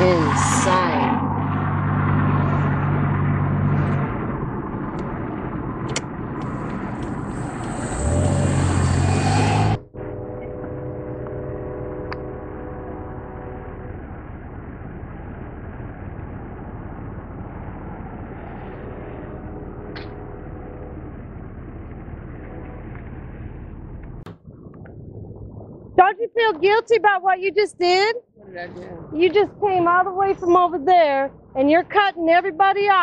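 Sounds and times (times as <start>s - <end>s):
outdoor traffic noise: 0.0s - 24.4s, 27.2s - 33.0s
car engine hum and road noise: 0.0s - 26.1s, 27.2s - 33.0s.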